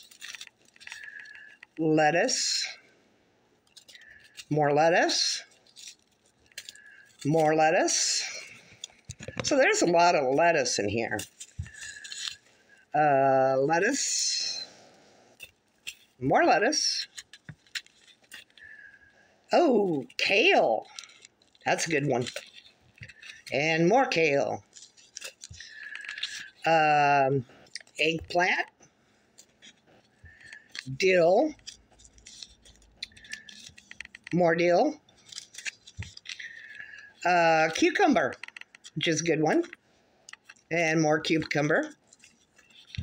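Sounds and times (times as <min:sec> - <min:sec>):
plastic bags crinkling: 0:00.0 - 0:02.8, 0:03.6 - 0:12.9, 0:15.3 - 0:34.4, 0:35.0 - 0:43.0.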